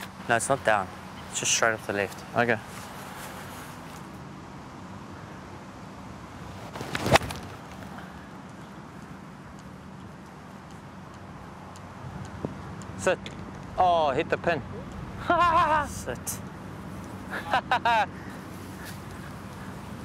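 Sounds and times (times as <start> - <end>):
outdoor background noise: 0.0 - 20.0.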